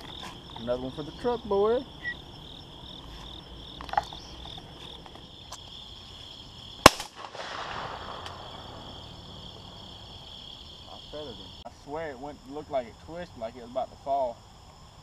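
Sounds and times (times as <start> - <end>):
insects droning: 0.0 - 15.0
shotgun shot: 6.8 - 8.9.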